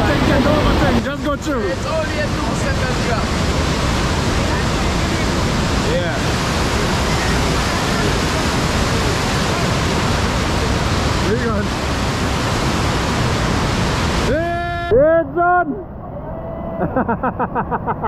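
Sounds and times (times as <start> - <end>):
whitewater rushing in waterfall pool: 0.0 - 18.0.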